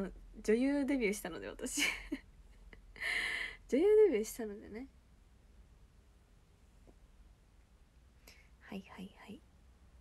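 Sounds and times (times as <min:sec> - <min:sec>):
faint low hum: 0:00.0 - 0:10.0
young woman speaking softly: 0:03.7 - 0:04.9, 0:08.6 - 0:09.5.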